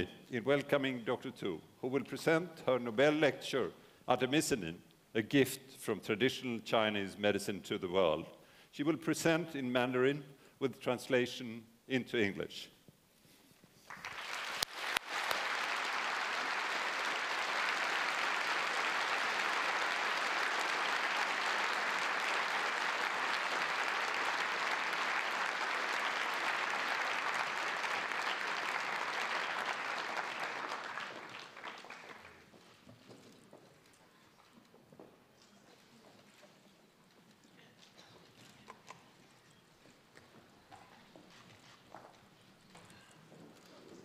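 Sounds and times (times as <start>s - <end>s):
audience applauding: 13.8s - 32.5s.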